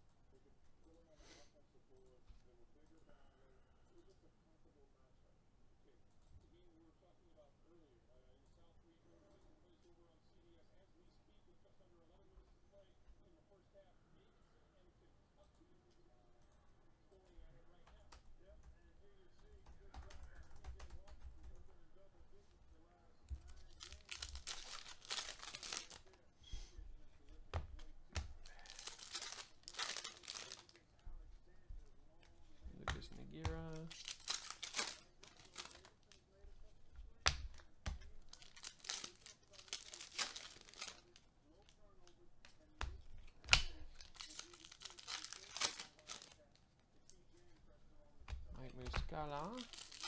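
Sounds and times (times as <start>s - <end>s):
foil wrappers tearing and crinkling: 23.4s - 26.2s, 28.4s - 30.8s, 33.6s - 36.1s, 37.2s - 41.2s, 43.3s - 46.5s, 49.2s - 50.0s.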